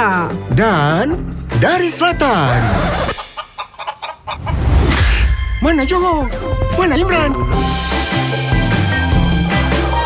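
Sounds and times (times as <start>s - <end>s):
hen clucking: 2.9s - 4.8s.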